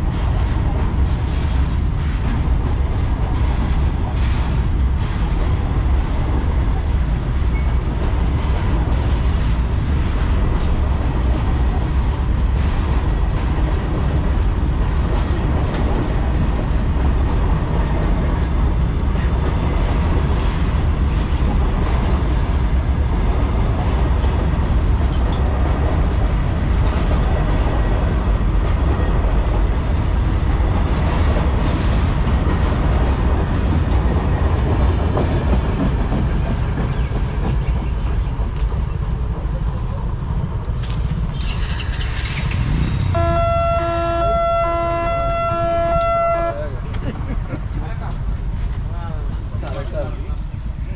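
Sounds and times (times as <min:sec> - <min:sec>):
freight train rumbling over rails: 0:00.0 - 0:50.9
train horn: 0:43.1 - 0:46.7.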